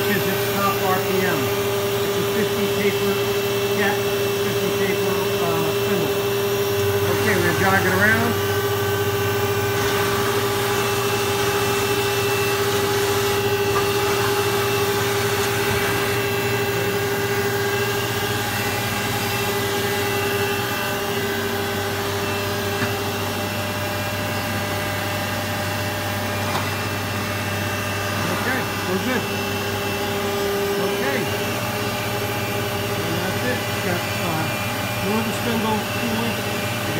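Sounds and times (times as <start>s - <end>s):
machine spindle hum and whine: 0.0s - 36.9s.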